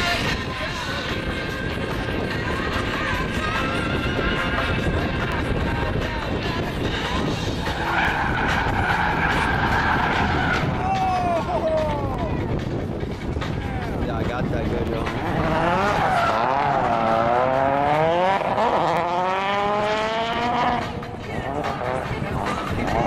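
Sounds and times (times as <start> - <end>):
car engines revving: 0.0 - 23.0
tyres squealing: 7.6 - 11.9, 15.1 - 17.4.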